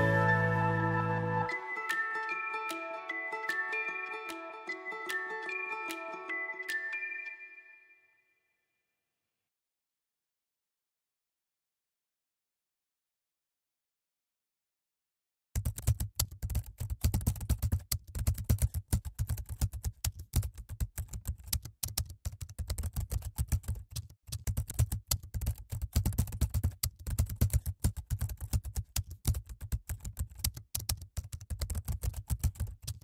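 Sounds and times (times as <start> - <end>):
keyboard typing clicks: 15.6 - 33.0.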